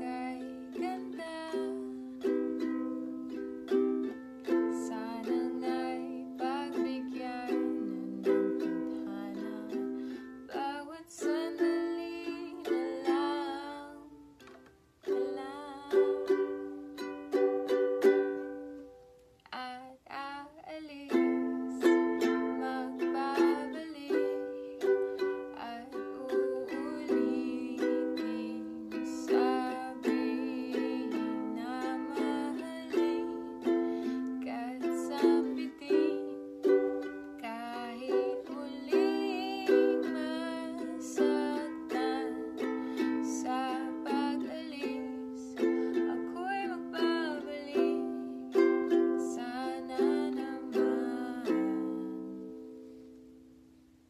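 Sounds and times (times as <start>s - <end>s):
woman singing: 0.0s - 14.4s, 15.0s - 18.5s, 19.4s - 52.6s
ukulele strumming: 0.0s - 53.7s.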